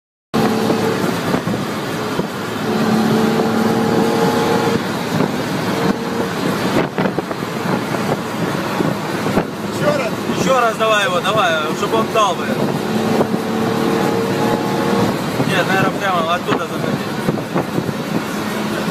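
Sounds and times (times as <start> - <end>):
car road and wind noise: 0.3 - 18.9.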